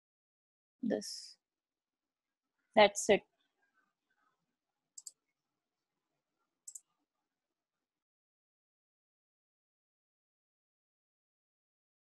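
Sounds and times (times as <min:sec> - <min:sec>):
computer mouse clicks: 0:05.0 - 0:05.2, 0:06.6 - 0:06.9.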